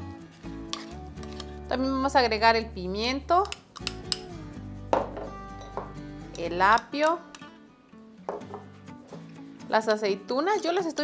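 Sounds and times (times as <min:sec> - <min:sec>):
background music: 0:00.0 - 0:11.0
glass bowl knock: 0:04.9 - 0:06.0, 0:08.3 - 0:08.7.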